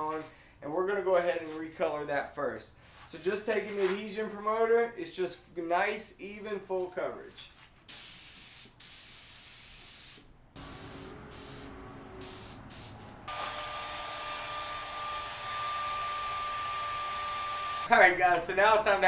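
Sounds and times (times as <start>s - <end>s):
spray gun hissing in spurts: 7.9s - 13.5s
hair dryer whining: 10.6s - 17.9s.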